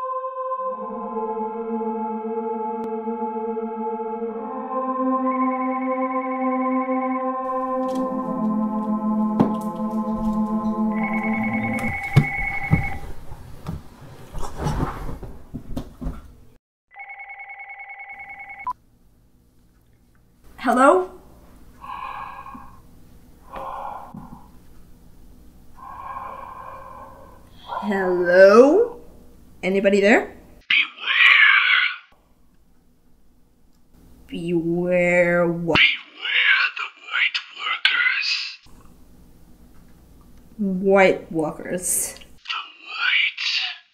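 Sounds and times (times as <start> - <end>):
phone ringtone: 10.0 - 13.0, 16.9 - 18.7.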